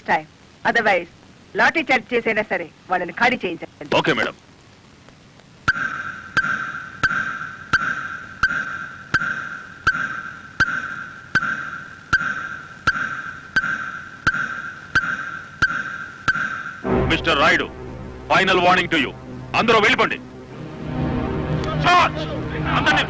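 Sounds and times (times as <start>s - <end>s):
sharp clock ticking: 5.7s - 16.8s
steady high ringing tone: 5.7s - 22.7s.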